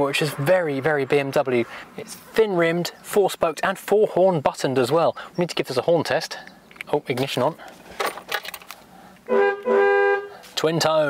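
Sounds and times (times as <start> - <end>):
two-tone car horn: 9.3 - 10.4.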